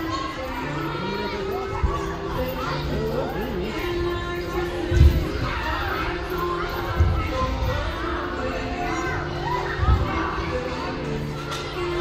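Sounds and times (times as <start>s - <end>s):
background music: 0.0s - 12.0s
children's voices echoing: 0.0s - 12.0s.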